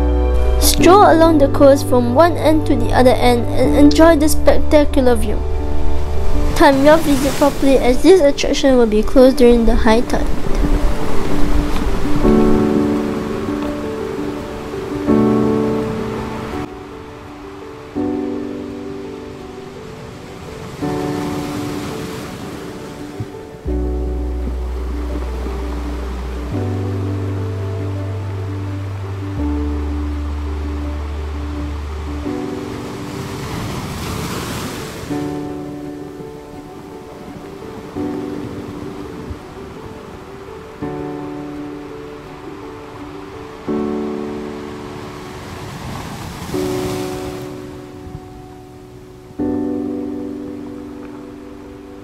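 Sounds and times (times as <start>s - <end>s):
surf: 0.0s - 52.0s
sustained chords music: 0.0s - 52.0s.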